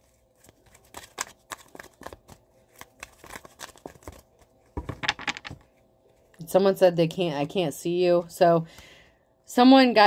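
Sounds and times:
cards being shuffled: 0.0 - 5.8.

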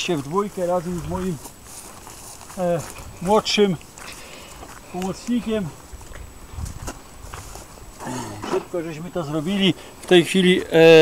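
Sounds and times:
footsteps on grass: 0.0 - 10.8.

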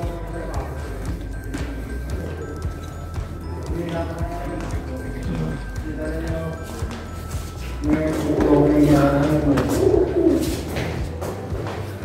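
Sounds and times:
pigeon cooing: 8.4 - 11.0.

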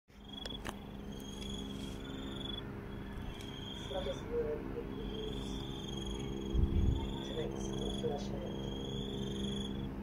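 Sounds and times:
insects trilling: 0.1 - 10.0
steady low hum: 0.1 - 10.0.

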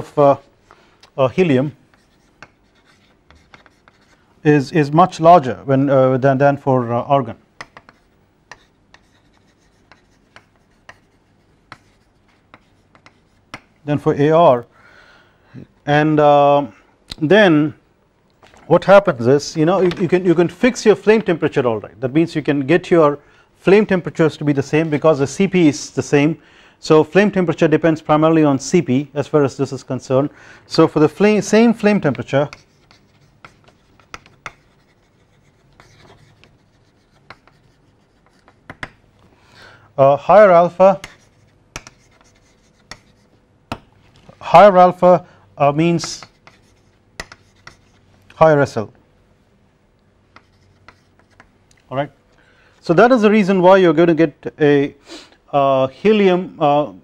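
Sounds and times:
chalk tapping and scratching: 1.8 - 4.2, 7.6 - 13.8, 31.2 - 39.0, 40.7 - 43.4, 46.0 - 48.1, 50.3 - 51.5.

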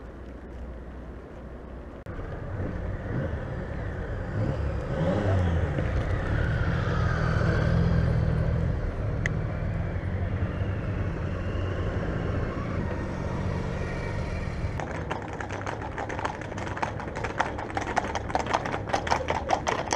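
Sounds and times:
road traffic engines: 0.0 - 19.9
motorcycles passing: 2.1 - 19.9
bicycle rolling over cobblestones: 14.8 - 19.9.

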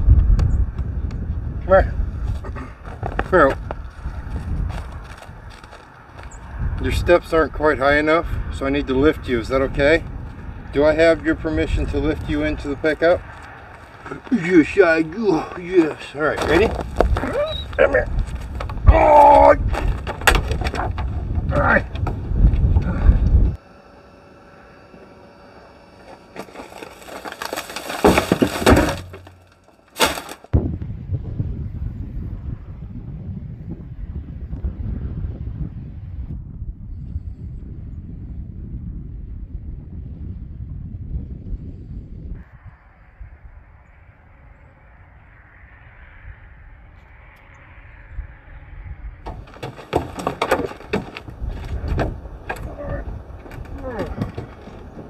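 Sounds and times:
wind buffeting microphone: 0.0 - 23.6, 30.5 - 55.0
loud sudden noises: 26.3 - 30.6.

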